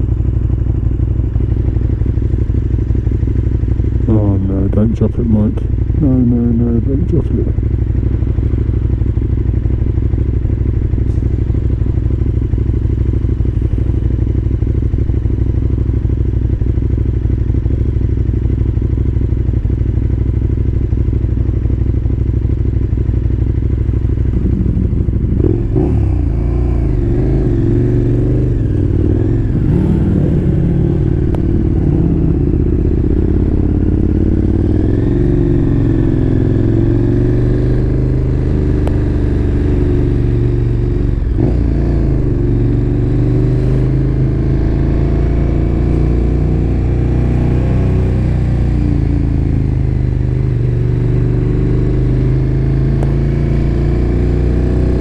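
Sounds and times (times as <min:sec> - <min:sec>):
motorcycle engine idling and revving: 0:00.0 - 0:55.0.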